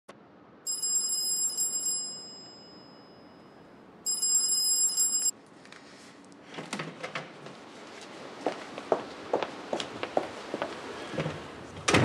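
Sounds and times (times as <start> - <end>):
telephone ringing: 0.7 - 5.3.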